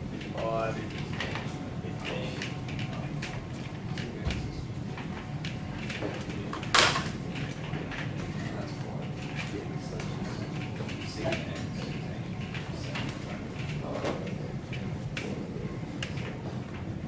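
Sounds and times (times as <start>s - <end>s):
steady room hum: 0.0s - 17.0s.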